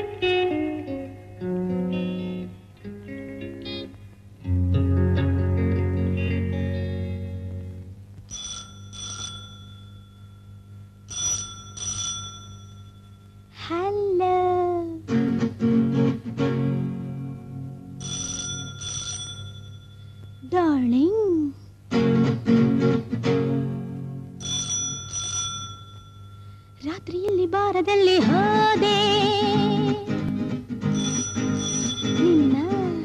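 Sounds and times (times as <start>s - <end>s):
low steady hum: 0.0s - 33.0s
desk telephone ringing: 8.3s - 13.6s, 18.0s - 20.5s, 24.4s - 27.3s, 30.8s - 33.0s.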